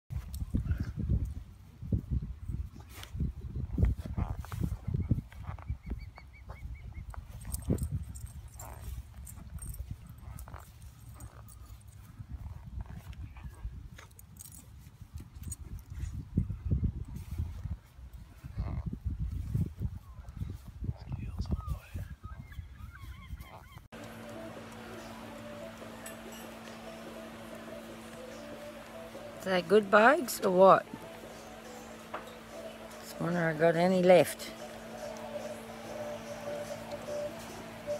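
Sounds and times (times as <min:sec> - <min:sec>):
wind buffeting microphone: 0:00.1 - 0:10.4, 0:12.0 - 0:23.9.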